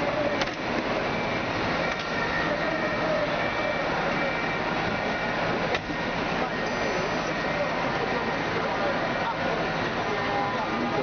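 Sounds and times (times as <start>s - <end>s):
bus engine running: 0.0s - 11.0s.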